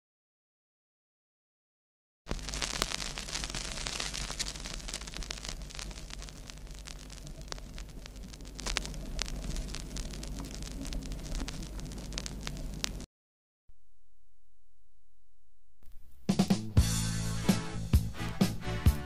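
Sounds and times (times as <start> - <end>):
record hiss: 2.3 - 13.1, 15.6 - 19.0
vinyl crackle and pops: 2.3 - 13.1.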